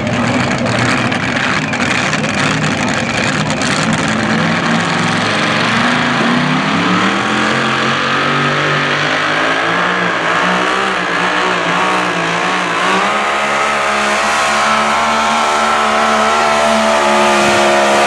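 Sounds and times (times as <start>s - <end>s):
tractor engine at high revs: 0.0s - 18.0s.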